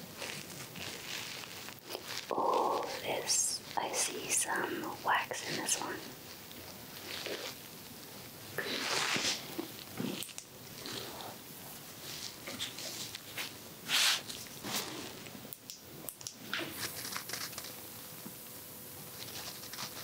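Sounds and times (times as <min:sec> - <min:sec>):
ear tools scratching and crackling: 0:00.0 - 0:11.4, 0:16.6 - 0:17.8.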